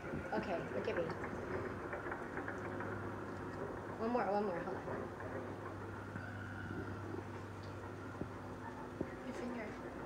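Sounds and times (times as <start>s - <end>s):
faint rumbling: 0.0s - 10.0s
low background hum: 0.0s - 10.0s.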